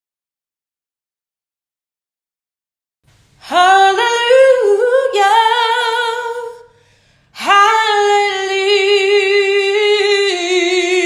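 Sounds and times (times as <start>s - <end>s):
woman singing unaccompanied: 3.4s - 6.7s, 7.4s - 11.0s.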